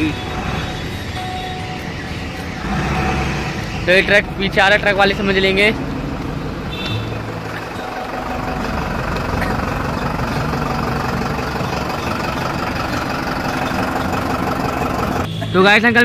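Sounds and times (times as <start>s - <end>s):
truck engine idling: 0.0s - 15.4s.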